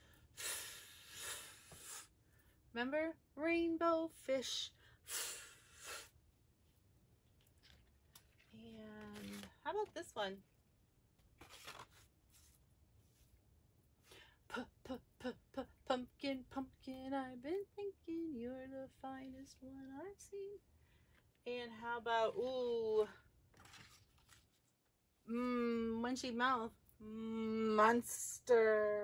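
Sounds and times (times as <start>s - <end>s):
paper card rustling in plastic pocket: 7.3s - 10.2s, 11.2s - 12.6s, 22.4s - 25.0s.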